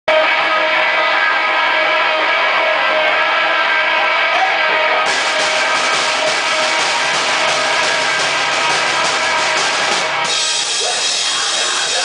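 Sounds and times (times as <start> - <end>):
distorted electric guitars: 0.1 - 12.0.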